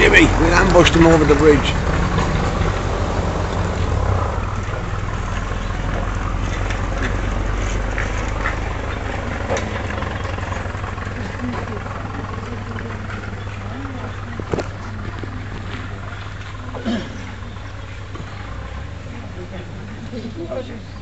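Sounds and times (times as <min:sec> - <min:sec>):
faint voices: 0:00.0 - 0:21.0
vehicle engine idling: 0:00.0 - 0:21.0.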